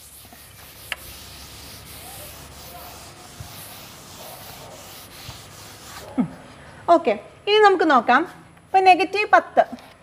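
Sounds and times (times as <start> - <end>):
board duster rubbing chalkboard: 0.0 - 6.2.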